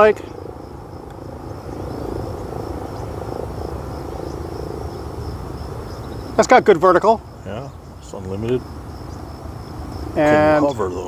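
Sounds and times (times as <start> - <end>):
distant model plane motors buzzing: 0.0 - 11.0.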